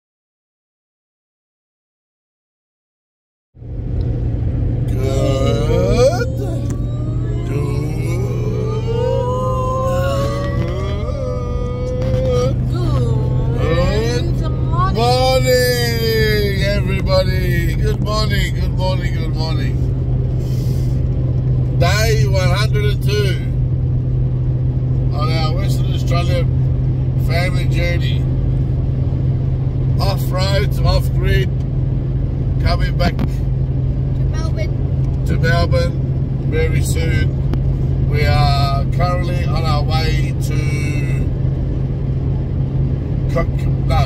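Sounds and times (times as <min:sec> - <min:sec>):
car cabin engine drone: 0:03.6 - 0:44.0
people talking: 0:04.9 - 0:19.8, 0:21.8 - 0:23.6, 0:25.1 - 0:26.5, 0:27.2 - 0:28.2, 0:30.0 - 0:31.5, 0:32.6 - 0:33.4, 0:34.3 - 0:37.3, 0:38.1 - 0:41.3, 0:43.3 - 0:44.0.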